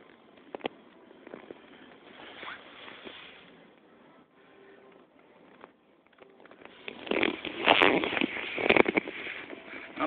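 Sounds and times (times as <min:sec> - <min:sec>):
phone handling rubbing and rustling: 0:06.4 - 0:10.0.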